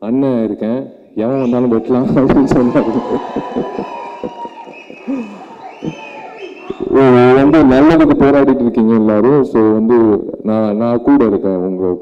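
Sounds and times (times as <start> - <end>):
man laughing into a microphone: 1.8 - 6.3.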